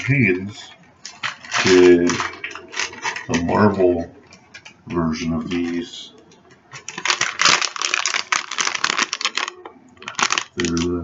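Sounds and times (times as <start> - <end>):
foil packet crinkling: 1.0 - 6.0, 6.7 - 11.0.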